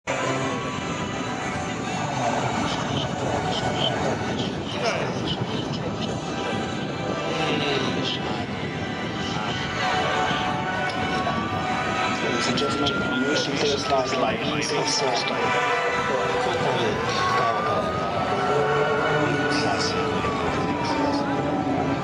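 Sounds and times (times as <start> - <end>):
music: 0.1 - 22.0
propeller planes flying over: 0.1 - 22.0
voices: 0.1 - 22.0.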